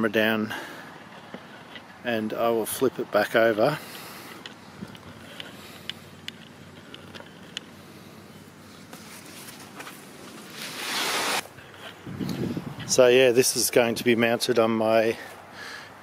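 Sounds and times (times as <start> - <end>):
panel rustling on cardboard and paper: 8.7 - 12.0.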